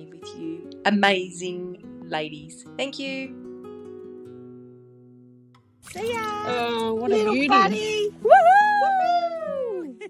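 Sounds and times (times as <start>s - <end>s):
soft guitar music: 0.0s - 10.0s.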